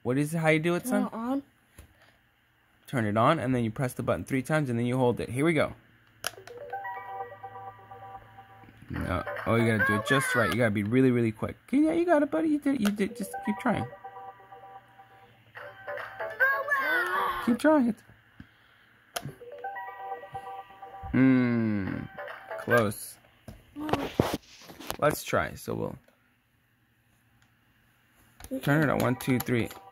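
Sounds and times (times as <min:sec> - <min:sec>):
electronic toy jingle: 0:06.5 - 0:10.1, 0:13.1 - 0:16.8, 0:19.4 - 0:21.1.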